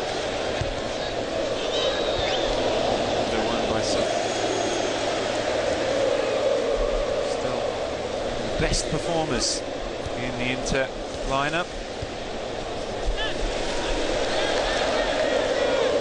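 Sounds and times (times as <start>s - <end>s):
stadium crowd murmur: 0.0s - 16.0s.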